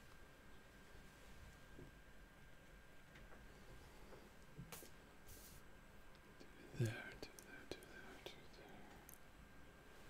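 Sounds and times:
man's quiet vocal sound: 6.4 - 9.3.

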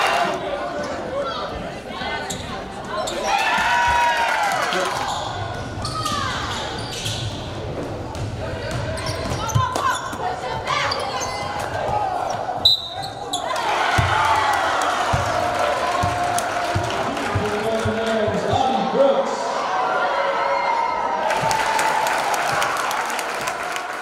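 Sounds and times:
indistinct voices in a gym: 0.0 - 21.4.

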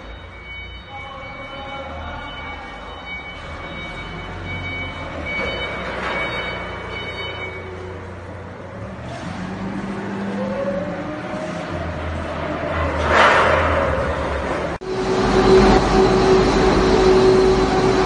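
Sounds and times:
machine hum: 14.2 - 18.0.

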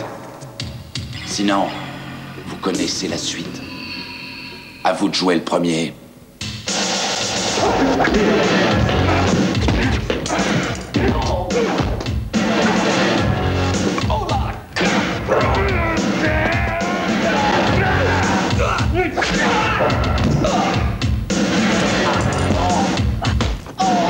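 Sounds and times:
loud film score music: 6.0 - 24.0.

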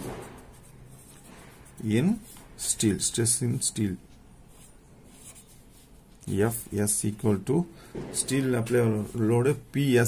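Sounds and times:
pen scratching on paper: 0.0 - 2.4.

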